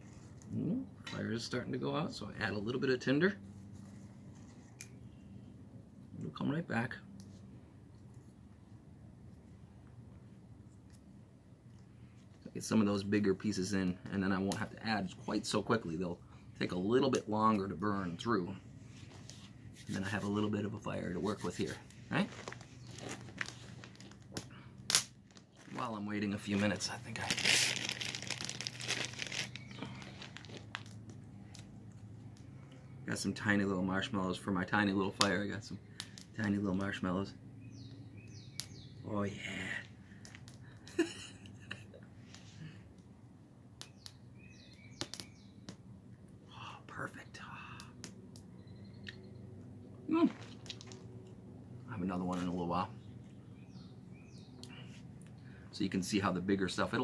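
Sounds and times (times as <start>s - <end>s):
twig fire crackling: 11.7s - 33.4s, 34.0s - 48.6s, 50.1s - 52.8s
wood and foil clicking and snapping: 22.3s - 25.9s, 26.7s - 31.7s, 50.3s - 51.1s
bird chirps: 29.5s - 30.2s, 37.5s - 39.1s, 43.9s - 45.7s, 48.4s - 49.6s, 52.9s - 54.9s.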